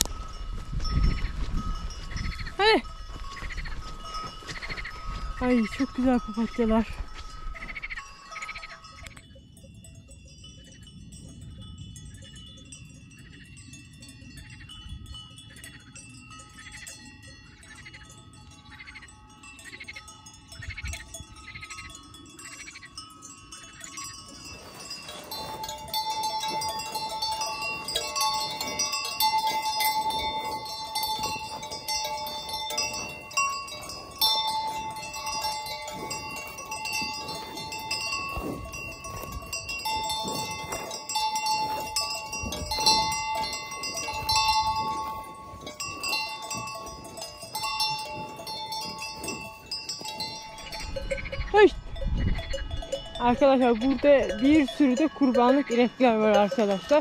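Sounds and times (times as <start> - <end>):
cowbells clanking: 0.0 - 57.0.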